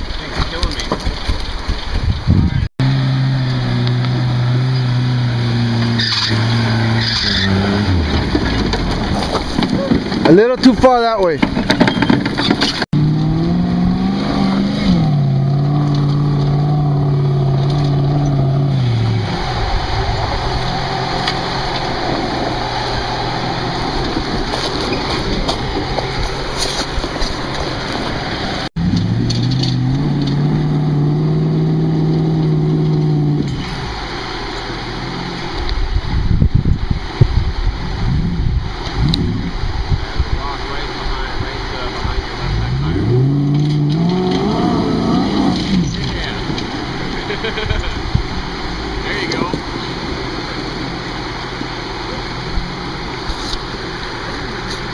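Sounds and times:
suv engine revving: 0.1 - 54.9.

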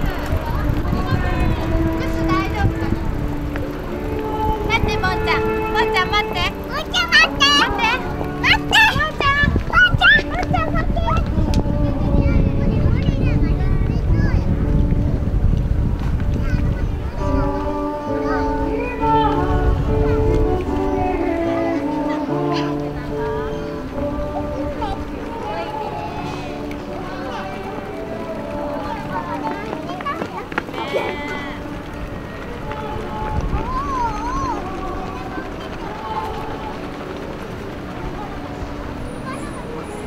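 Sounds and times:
outdoor background noise: 0.0 - 40.0
people's voices: 0.0 - 40.0
wind buffeting microphone: 0.0 - 40.0.

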